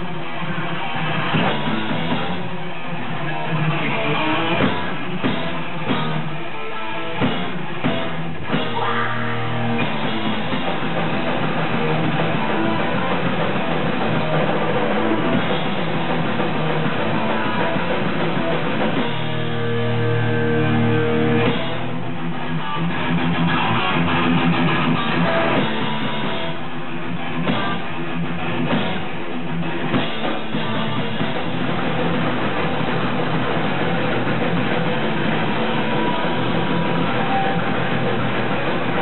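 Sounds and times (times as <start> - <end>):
bass guitar: 0.0 - 39.0
distorted electric guitars: 0.0 - 39.0
drum kit: 0.0 - 39.0.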